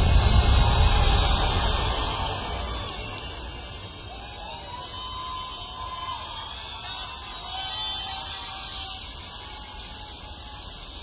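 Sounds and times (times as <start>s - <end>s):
festival crowd noise: 0.0s - 11.0s.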